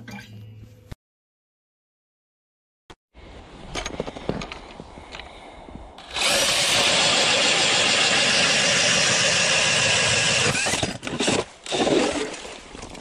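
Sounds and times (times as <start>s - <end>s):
cordless drill boring into ice: 6.0s - 12.1s.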